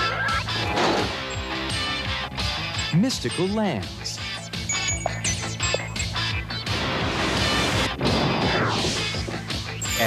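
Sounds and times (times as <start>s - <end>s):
cartoon crash: 8.0s - 9.2s.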